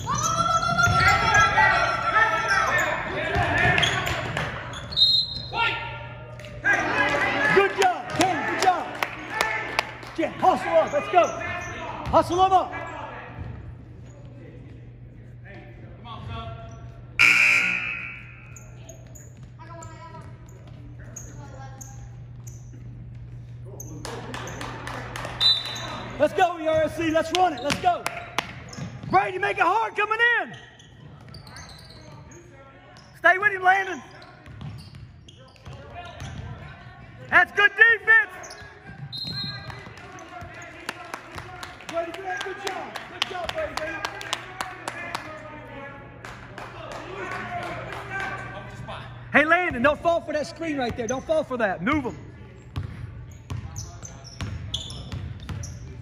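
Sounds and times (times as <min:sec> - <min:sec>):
voices echoing in a gymnasium: 0:00.0 - 0:56.0
basketball bouncing on hardwood floor: 0:52.8 - 0:53.7.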